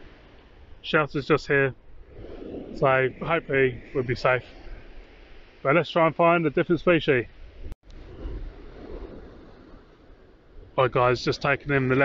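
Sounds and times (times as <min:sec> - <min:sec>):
wind on microphone: 0:01.6 - 0:05.7, 0:07.2 - 0:12.0.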